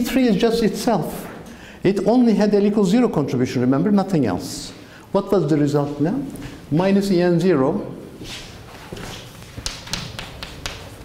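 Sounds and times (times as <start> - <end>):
chalk tapping on blackboard: 9.0 - 11.0.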